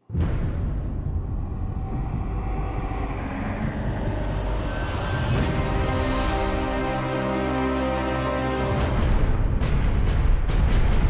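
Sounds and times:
deep cinematic rumble: 0:00.0 - 0:07.2
theme music tones: 0:00.1 - 0:11.0.

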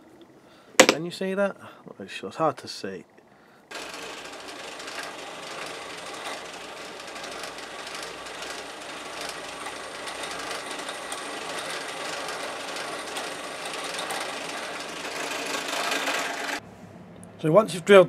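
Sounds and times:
drill press drilling steel: 0:03.7 - 0:16.6.

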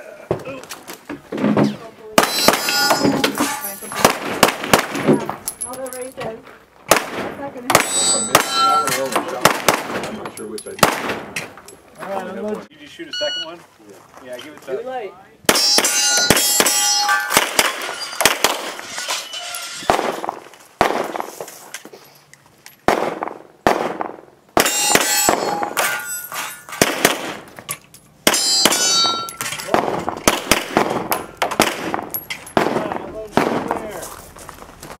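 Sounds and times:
metallic ring of steel targets: 0:02.2 - 0:04.0, 0:07.8 - 0:09.4, 0:15.5 - 0:20.0, 0:24.6 - 0:26.8, 0:28.2 - 0:30.0
handgun shots: 0:10.8 - 0:11.5, 0:15.5 - 0:18.8.

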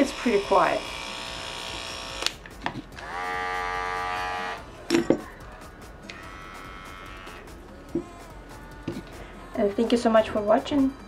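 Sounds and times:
electric clipper motor hum: 0:00.0 - 0:04.6, 0:06.0 - 0:08.0
higher-pitched clipper hum: 0:00.0 - 0:04.8, 0:06.0 - 0:09.2.

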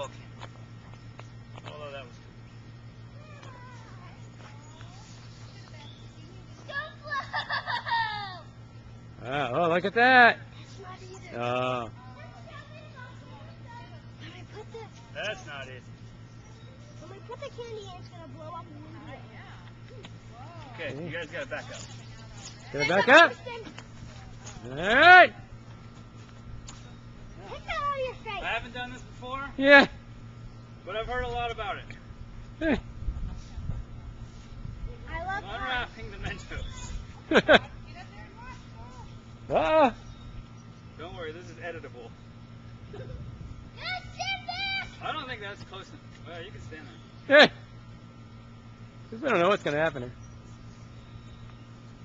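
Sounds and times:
low steady hum: 0:00.0 - 0:52.0
child calling out sing-song: 0:43.8 - 0:45.0.

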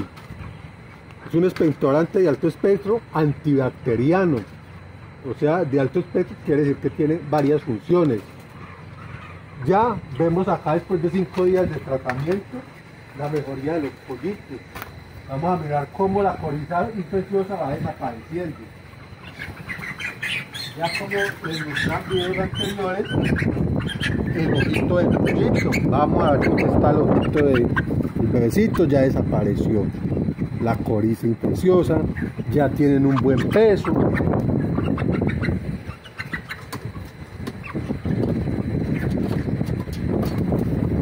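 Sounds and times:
chicks peeping: 0:00.0 - 0:41.0.

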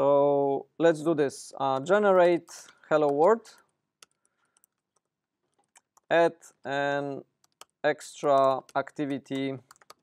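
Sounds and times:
computer keyboard typing: 0:04.0 - 0:06.1, 0:07.4 - 0:10.0.

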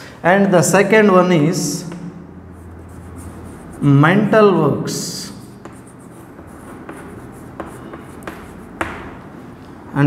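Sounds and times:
chalk scratching on chalkboard: 0:02.6 - 0:03.9, 0:05.0 - 0:09.3
chalk tapping on board: 0:05.2 - 0:09.3.

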